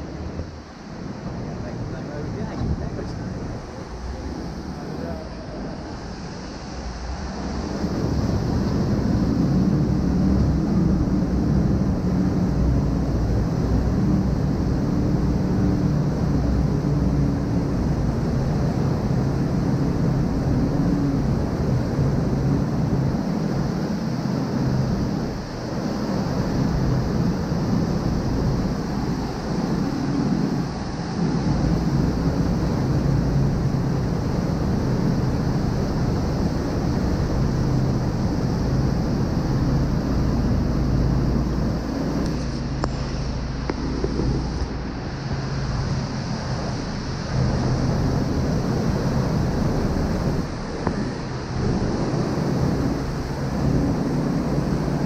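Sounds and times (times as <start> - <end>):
rushing churning water: 0.0 - 55.0
speedboat engines droning: 0.0 - 55.0
wind buffeting microphone: 0.0 - 55.0.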